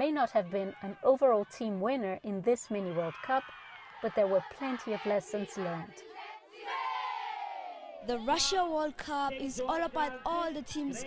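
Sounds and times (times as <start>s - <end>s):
children cheering: 0.2s - 1.7s, 2.6s - 8.0s.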